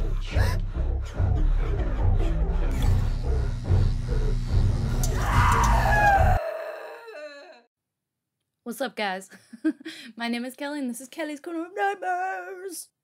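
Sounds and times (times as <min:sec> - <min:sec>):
horror music with heavy bass: 0:00.0 - 0:06.4
drawn-out falling cry: 0:05.1 - 0:07.7.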